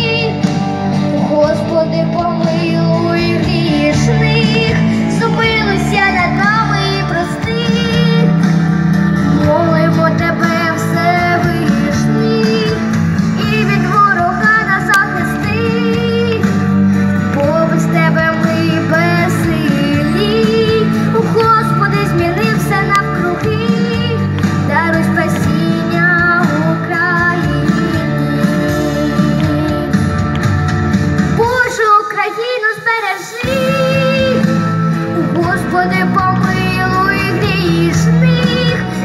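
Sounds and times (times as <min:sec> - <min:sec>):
girl singing into microphone: 0:00.0 - 0:30.4, 0:31.3 - 0:39.0
instrumental accompaniment: 0:00.0 - 0:31.6.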